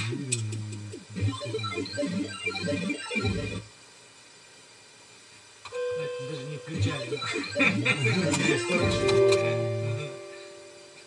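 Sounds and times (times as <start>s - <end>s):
gliding synth notes: 5.8s - 11.0s.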